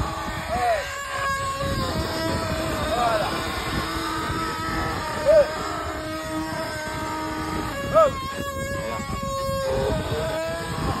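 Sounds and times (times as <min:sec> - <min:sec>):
wooden axle squealing whine: 0:00.0 - 0:11.0.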